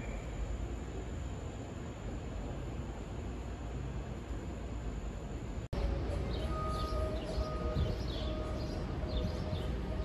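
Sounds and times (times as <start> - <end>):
low street rumble: 0.0 - 10.0
steady distant tone: 0.0 - 10.0
small birds chirping: 6.3 - 10.0.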